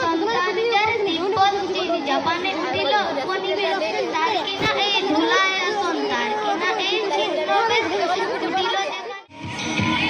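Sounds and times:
children chattering: 0.0s - 9.3s
girl speaking into a microphone: 0.0s - 9.3s.

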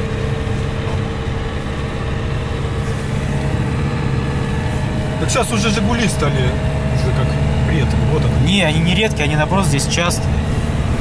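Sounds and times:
diesel engine droning: 0.0s - 11.0s.

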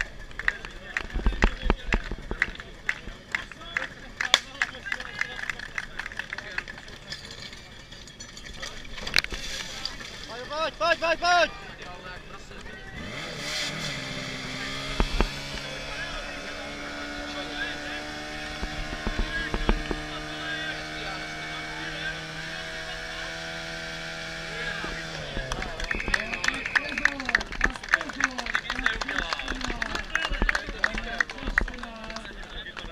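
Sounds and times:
people clapping: 0.0s - 7.2s, 25.0s - 32.9s
pump engine revving: 12.9s - 27.8s.

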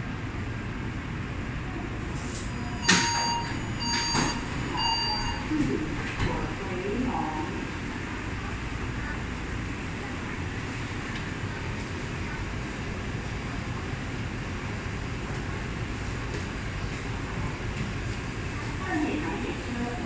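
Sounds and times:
train hum and hiss: 0.0s - 20.0s.

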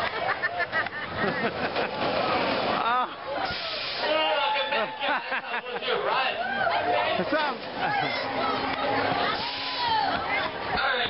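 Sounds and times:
voices: 0.0s - 11.0s
roller coaster rushing hiss: 3.4s - 4.2s, 9.3s - 10.1s.

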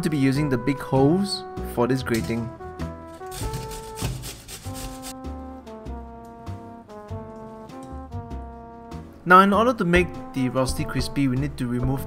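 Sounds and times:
background music: 0.0s - 12.0s
potato rasping on a grater: 3.1s - 5.2s.

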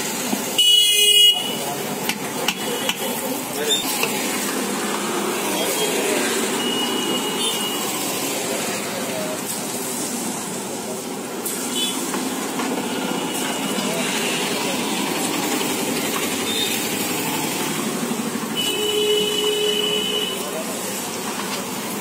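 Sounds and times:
street voices: 0.0s - 22.0s
traffic: 0.0s - 22.0s.

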